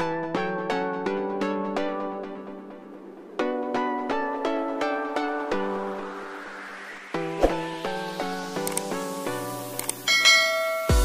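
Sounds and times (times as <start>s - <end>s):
plucked background music: 0.0s - 11.0s
bell chime: 10.1s - 11.0s.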